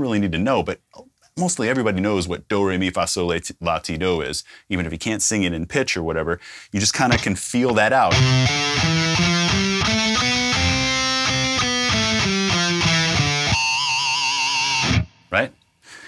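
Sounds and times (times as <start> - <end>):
distorted electric guitar chords: 8.1 - 15.3.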